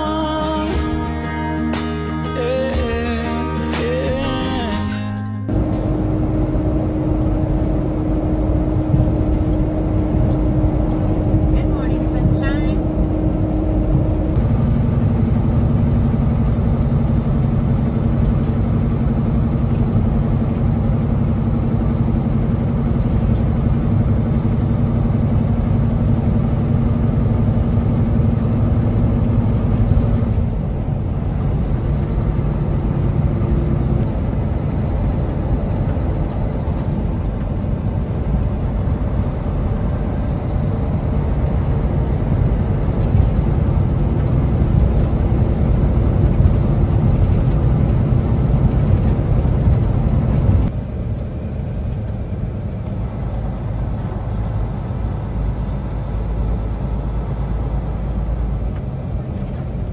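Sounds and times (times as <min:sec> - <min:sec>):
road noise inside cab: 0:00.0 - 0:59.9
truck diesel engine drone: 0:00.0 - 0:59.9.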